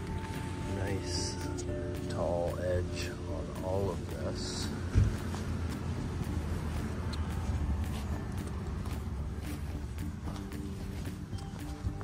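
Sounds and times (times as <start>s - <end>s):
steady low rumble: 0.0s - 12.0s
footsteps on grass: 4.7s - 12.0s.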